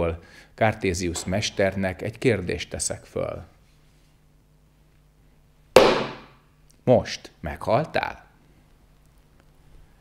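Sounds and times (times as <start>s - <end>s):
wooden staff strike: 5.8s - 6.4s.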